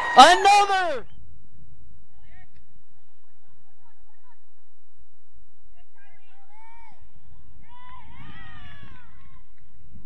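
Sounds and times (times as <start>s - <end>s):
low rumble: 1.0s - 10.0s.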